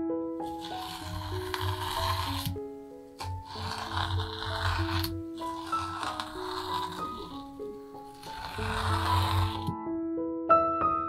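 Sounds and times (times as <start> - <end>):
soft piano music: 0.0 - 11.0
masking tape peeling: 0.4 - 9.7.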